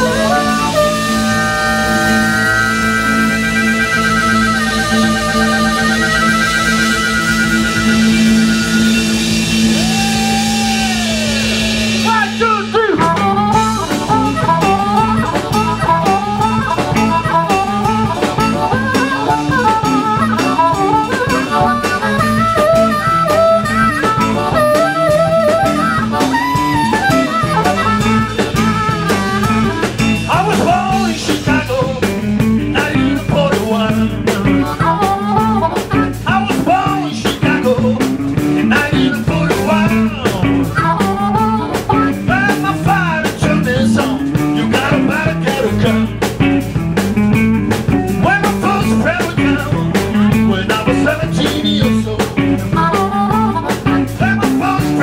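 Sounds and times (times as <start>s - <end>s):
blues harmonica solo: 0.0s - 55.0s
drums: 0.0s - 55.0s
electric guitars: 0.0s - 55.0s.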